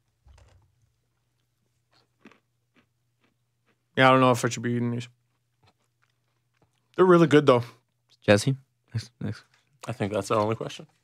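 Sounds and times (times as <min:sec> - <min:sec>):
person chewing crunchy snacks: 0:00.2 - 0:04.0, 0:05.1 - 0:07.0.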